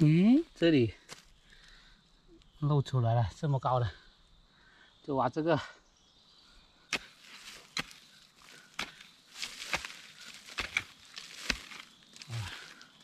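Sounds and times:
crunch of loosened earth: 6.8s - 13.0s
hoe chopping into stony soil: 6.9s - 12.3s.

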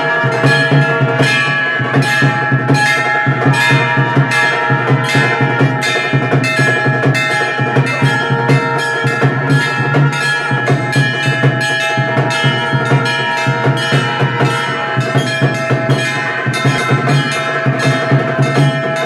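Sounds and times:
evenly spaced percussion strokes: 0.0s - 19.0s
temple bells ringing: 0.0s - 19.0s.

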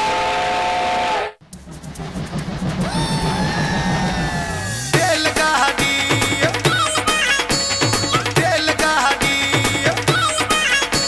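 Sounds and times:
rhythmic music: 1.4s - 11.0s.

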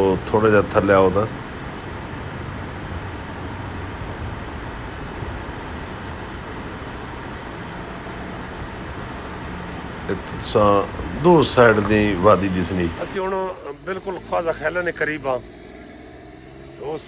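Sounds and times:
faint low hum: 0.0s - 14.8s
outdoor background noise: 0.0s - 17.0s.

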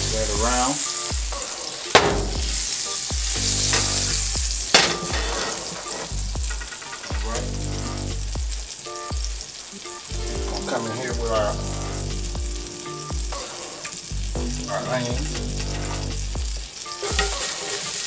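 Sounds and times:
oil and butter sizzling in skillet: 0.0s - 18.0s.

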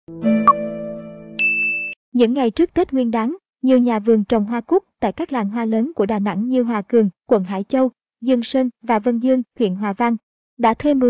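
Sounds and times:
bright high bell ding: 1.4s - 2.0s.

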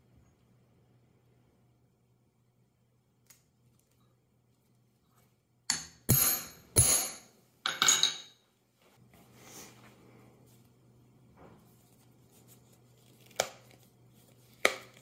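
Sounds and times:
hammer striking steel setter: 5.7s - 8.2s.

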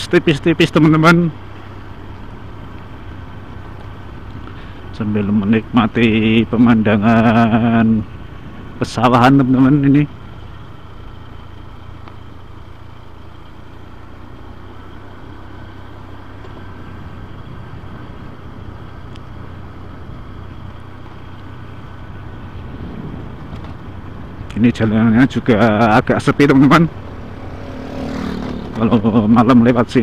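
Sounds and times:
motorcycle engine cruising: 0.0s - 30.0s
road and wind noise: 0.0s - 30.0s.

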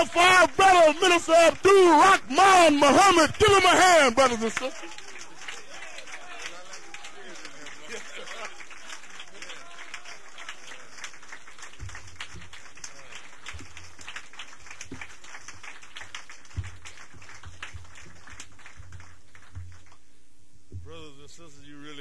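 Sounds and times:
audience applauding: 0.0s - 20.0s.

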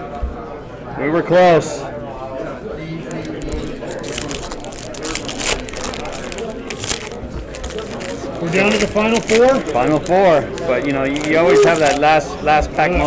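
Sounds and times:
cards and wrapper crackling: 3.0s - 12.8s.

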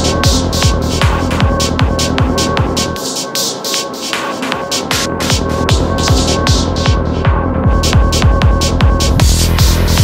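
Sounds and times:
fast kick drum: 4.6s - 10.0s
hi-hat: 7.8s - 10.0s.

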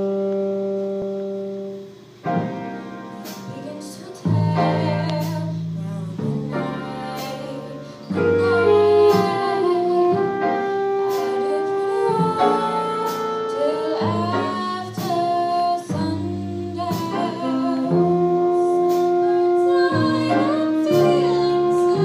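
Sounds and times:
instrumental backing: 0.0s - 22.0s
vocal group singing jazz ballad: 3.2s - 22.0s.

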